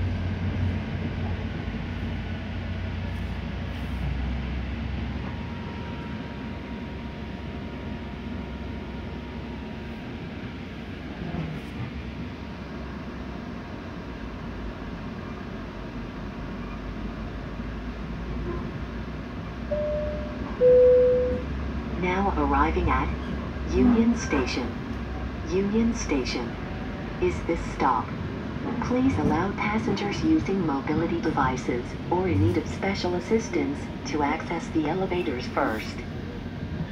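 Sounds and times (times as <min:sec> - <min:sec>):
train coach rumbling over tracks: 0:00.0 - 0:36.9
two-note falling chime: 0:19.7 - 0:21.4.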